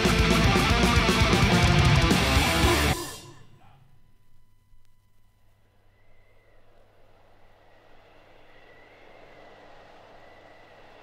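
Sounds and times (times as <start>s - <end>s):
steady low hum: 2.8s - 11.0s
faint wavering high tone: 2.9s - 7.4s
soft rush of noise: 3.2s - 11.0s.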